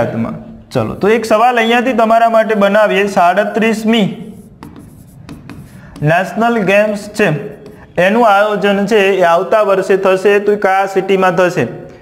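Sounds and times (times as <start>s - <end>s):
marker pen scratching on board: 0.8s - 1.4s, 4.2s - 8.0s.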